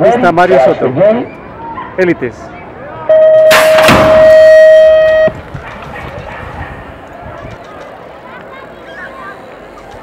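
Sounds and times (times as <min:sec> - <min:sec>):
long electronic beep: 0:03.1 - 0:05.4
pneumatic start gate dropping: 0:03.5 - 0:04.6.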